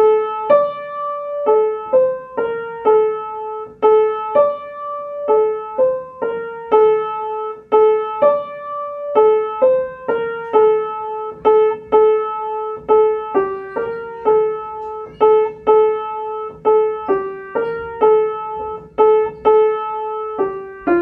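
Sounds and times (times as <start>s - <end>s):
slow gentle piano melody: 0.0s - 21.0s.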